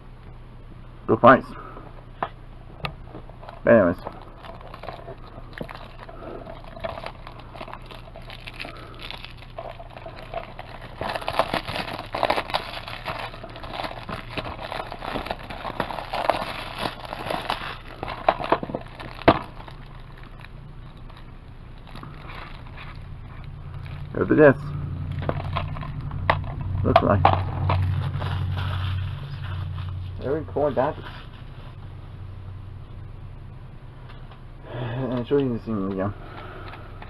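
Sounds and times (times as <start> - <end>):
plastic wrap crinkling: 3.2 - 26.3, 27.4 - 31.9.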